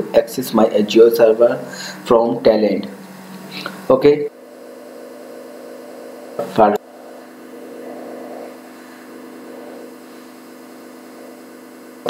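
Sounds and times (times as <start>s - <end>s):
electrical hum: 0.0s - 12.0s
narrator's voice: 6.4s - 6.8s.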